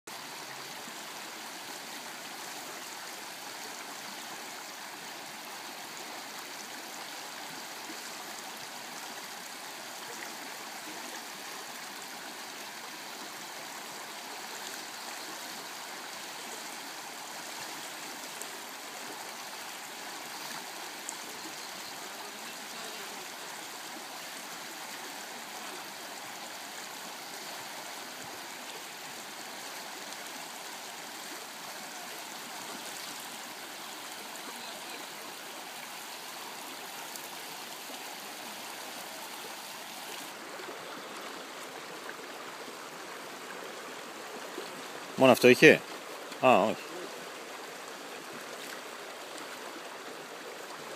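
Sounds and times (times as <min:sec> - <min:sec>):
river flowing over stones: 0:00.1 - 0:50.9.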